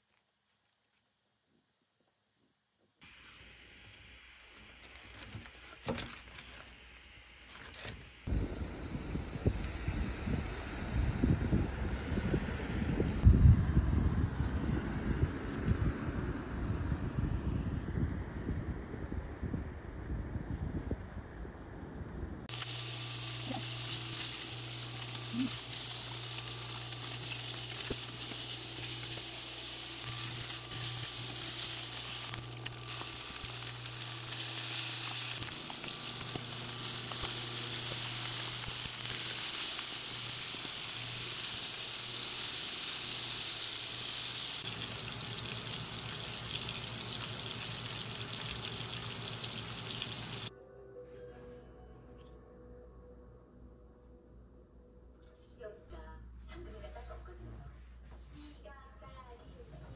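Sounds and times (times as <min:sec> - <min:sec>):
pork sizzling in a pan: 0:22.5 - 0:50.5.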